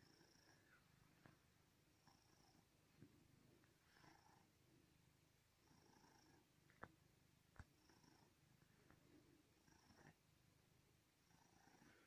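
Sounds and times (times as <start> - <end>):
cat purring: 0.0 - 12.0.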